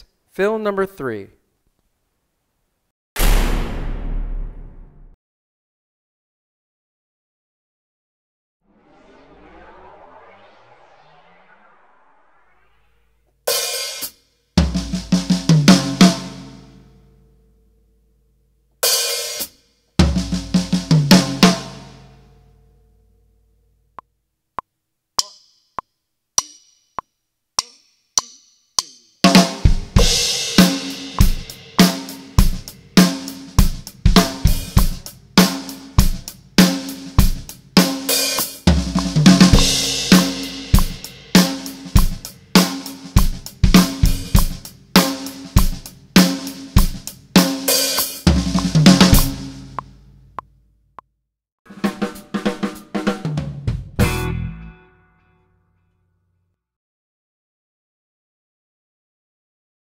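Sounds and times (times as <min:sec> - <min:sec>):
cymbal crashes: 0:03.2 - 0:05.0, 0:29.5 - 0:35.0, 0:39.4 - 0:45.4
drum kit groove with fills: 0:13.5 - 0:16.8, 0:18.8 - 0:22.1, 0:28.8 - 0:50.0, 0:51.7 - 0:54.4
music: 0:13.5 - 0:23.7, 0:25.2 - 0:50.2, 0:51.7 - 0:56.5.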